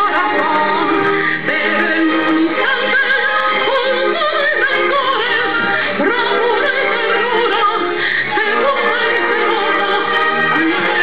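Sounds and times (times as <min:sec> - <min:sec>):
person singing a hymn with vibrato: 0:00.0 - 0:11.0.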